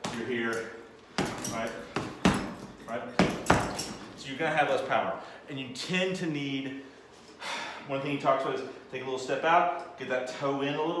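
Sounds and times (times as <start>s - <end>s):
punches thudding on heavy bag: 1.1s - 4.0s.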